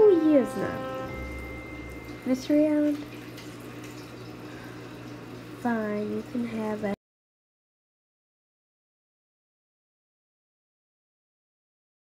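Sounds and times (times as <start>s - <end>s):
low hum: 0.0s - 3.7s.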